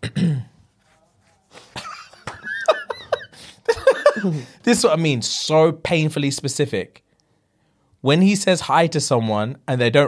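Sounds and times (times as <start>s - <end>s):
man laughing: 1.6s - 4.6s.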